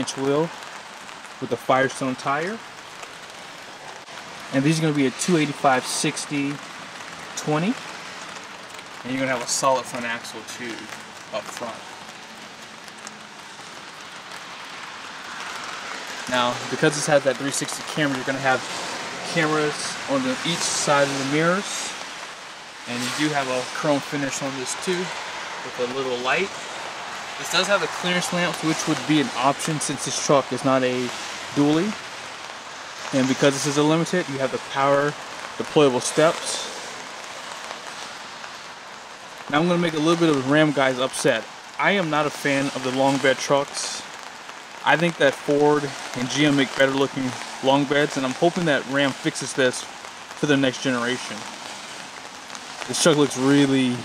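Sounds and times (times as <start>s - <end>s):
light rain falling: 0.0s - 54.0s.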